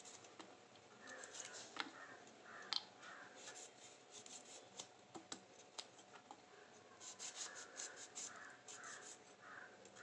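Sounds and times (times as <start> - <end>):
knife scraping fruit: 7.0 - 9.2.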